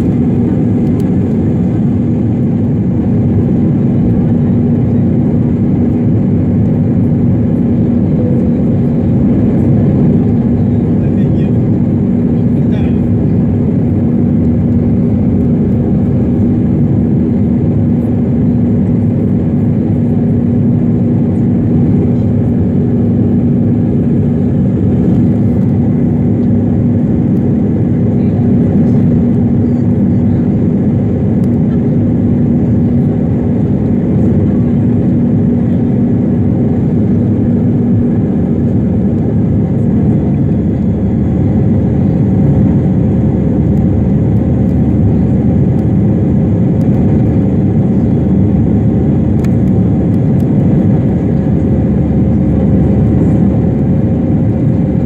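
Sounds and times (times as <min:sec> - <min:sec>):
aircraft engine drone: 0:00.0 - 0:55.0
low hum: 0:00.0 - 0:55.0.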